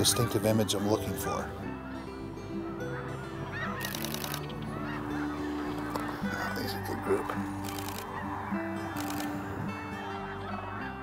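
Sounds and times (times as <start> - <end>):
geese honking: 0.0 - 11.0
rapid clicks: 3.8 - 4.6, 7.6 - 8.2, 8.9 - 9.4.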